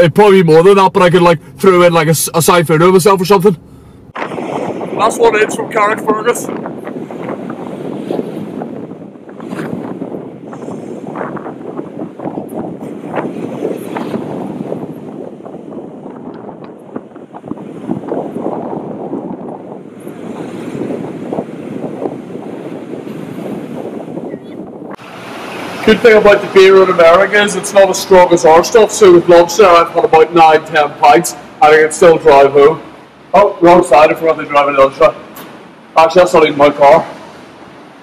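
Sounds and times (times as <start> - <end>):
wind buffeting microphone: 3.6 - 38.0
ocean surf breaking on beach: 4.2 - 24.3, 25.0 - 38.0.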